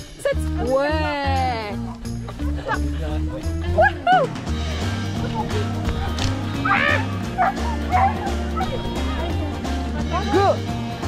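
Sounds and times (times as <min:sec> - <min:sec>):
background music with beat: 0:00.0 - 0:11.0
dog yipping: 0:06.6 - 0:08.9.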